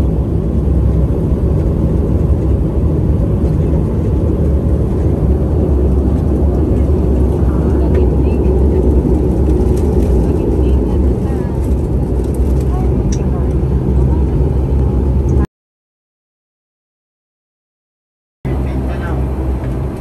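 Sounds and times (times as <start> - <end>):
airliner cabin engine rumble: 0.0 - 15.5, 18.5 - 20.0.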